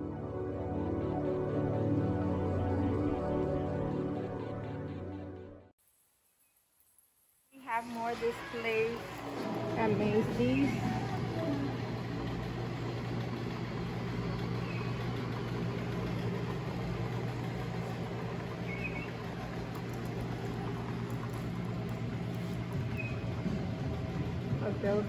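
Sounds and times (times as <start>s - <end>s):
low mechanical hum: 7.1s - 25.0s.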